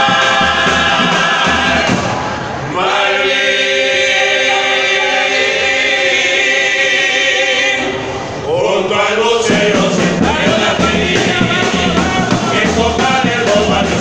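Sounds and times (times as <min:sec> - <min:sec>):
male vocal group singing in harmony: 0:00.0 - 0:14.0.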